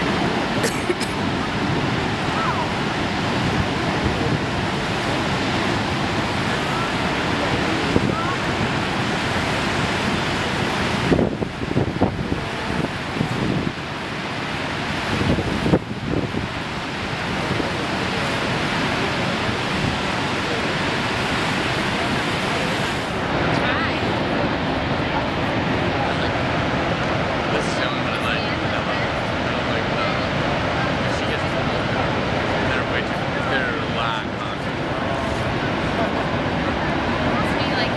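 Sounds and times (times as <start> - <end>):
wind buffeting microphone: 1.2 - 27.6.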